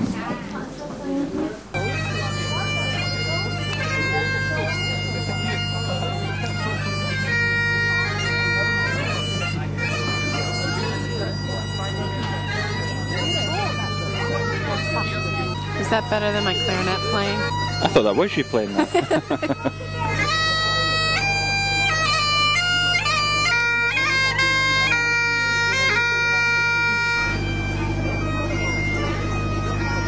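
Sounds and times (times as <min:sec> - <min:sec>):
bagpipes playing: 0:01.8 - 0:30.0.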